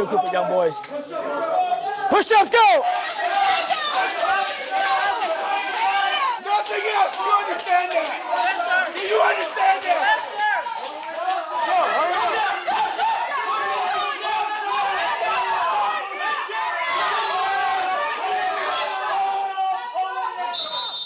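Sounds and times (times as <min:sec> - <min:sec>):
instructors yelling: 0:00.0 - 0:21.0.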